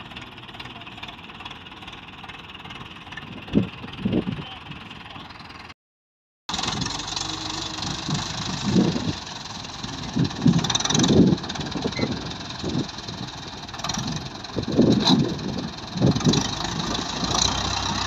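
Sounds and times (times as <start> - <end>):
tractor diesel engine under load: 0.0 - 5.8, 6.5 - 18.0.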